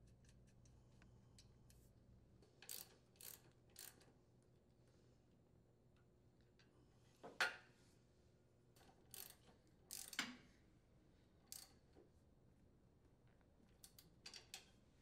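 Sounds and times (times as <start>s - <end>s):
wrench clicking on nuts: 2.6s - 4.1s, 8.8s - 10.3s.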